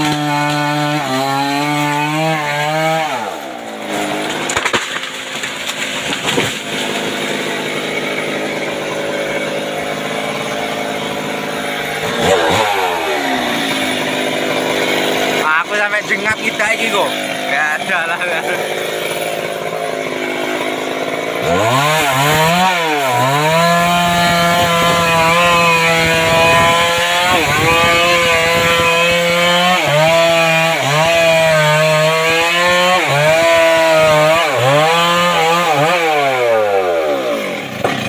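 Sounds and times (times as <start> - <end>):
chainsaw cutting log: 0.0 - 38.0.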